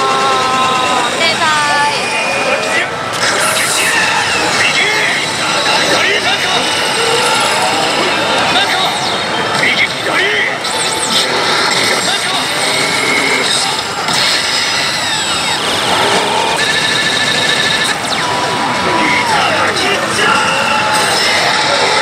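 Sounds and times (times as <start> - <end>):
loud gaming parlour din: 0.0 - 22.0
electronic slot machine effects: 3.2 - 22.0
rapid beeps: 3.3 - 21.6.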